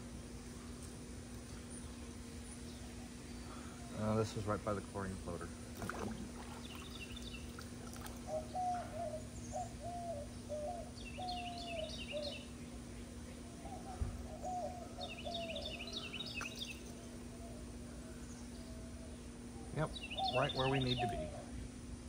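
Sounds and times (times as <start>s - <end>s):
steady low hum: 0.0s - 22.0s
bird low hooting: 1.5s - 4.5s, 5.9s - 22.0s
bird rapid chirping song: 6.2s - 17.2s, 19.6s - 21.5s.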